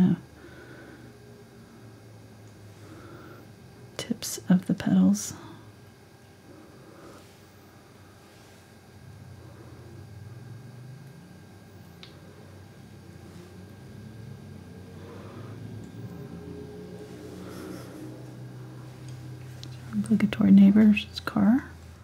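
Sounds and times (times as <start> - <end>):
distant small engine droning: 13.9 - 19.4.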